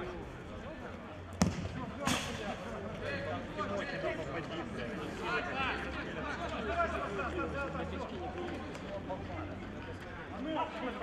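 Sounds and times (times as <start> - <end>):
ball kicked hard: 1.4 - 1.8
ball impact: 1.4 - 2.4.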